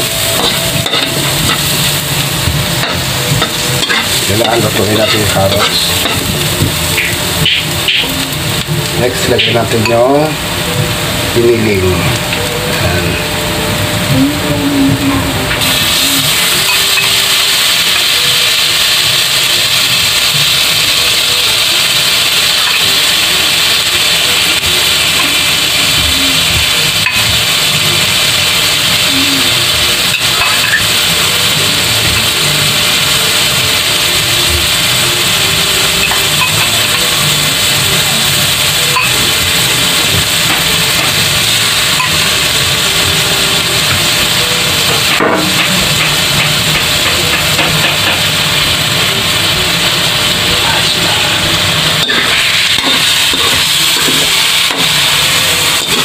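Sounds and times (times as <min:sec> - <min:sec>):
meat sizzling in a wok: 0:00.0 - 0:56.0.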